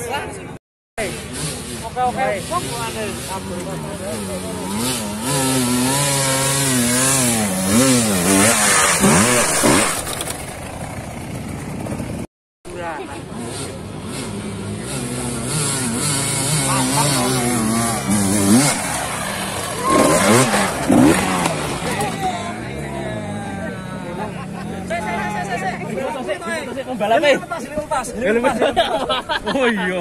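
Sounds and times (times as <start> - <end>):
dirt bike engines revving: 1.0 - 30.0.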